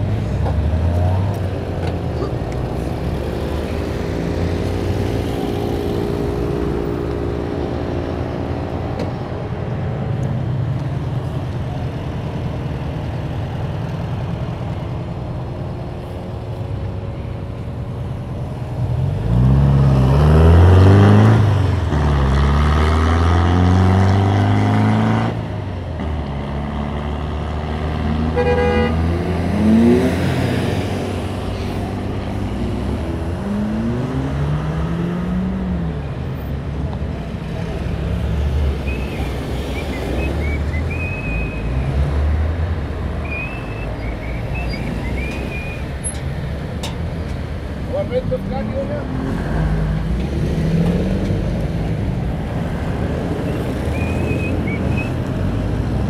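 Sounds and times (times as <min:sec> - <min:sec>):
car engines running: 0:00.0 - 0:56.0
vehicle accelerating loudly: 0:19.0 - 0:36.0
car horn toot: 0:28.3 - 0:29.0.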